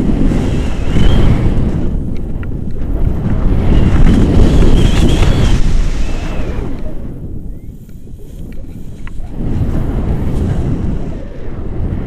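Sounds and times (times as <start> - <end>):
wind buffeting microphone: 0.0 - 12.0
faint high whistle: 0.8 - 1.4, 7.5 - 7.9.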